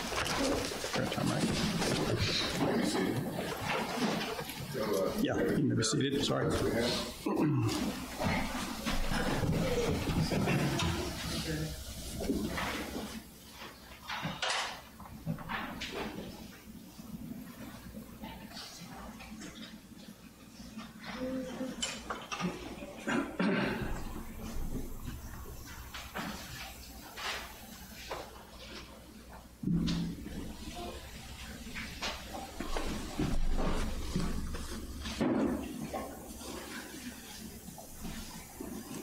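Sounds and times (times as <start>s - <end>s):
rustling and shuffling: 0.0s - 5.5s, 6.5s - 14.3s, 23.9s - 39.0s.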